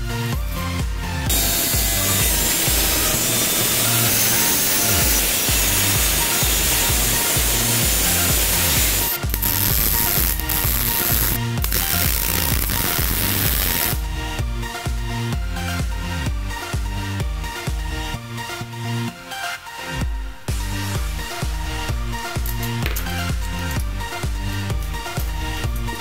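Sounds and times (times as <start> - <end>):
electronic dance music: 0.0 - 26.0
angle grinder cutting sheet steel: 1.3 - 14.0.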